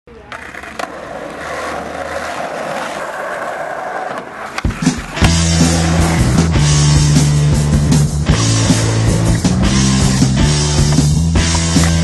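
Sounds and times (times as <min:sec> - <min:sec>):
skateboard clacking on ground: 0:00.1 - 0:05.4
skateboard wheels rolling on asphalt: 0:00.1 - 0:12.0
guitar rock music: 0:04.6 - 0:12.0.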